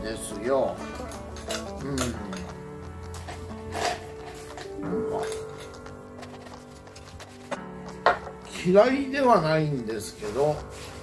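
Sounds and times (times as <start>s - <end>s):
quiet background music: 0.0s - 11.0s.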